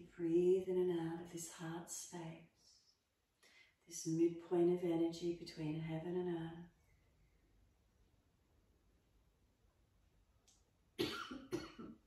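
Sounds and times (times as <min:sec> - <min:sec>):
woman coughing: 0:11.0 - 0:12.0.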